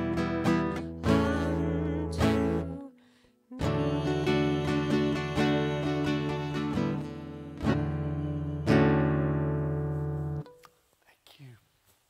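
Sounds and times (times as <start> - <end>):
acoustic guitar chord strummed: 0.0 - 10.7.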